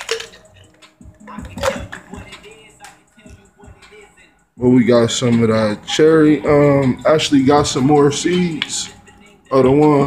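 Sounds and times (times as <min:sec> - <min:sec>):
plastic containers knocking and clicking: 0:00.0 - 0:00.7, 0:01.4 - 0:02.1
faint music: 0:00.0 - 0:10.0.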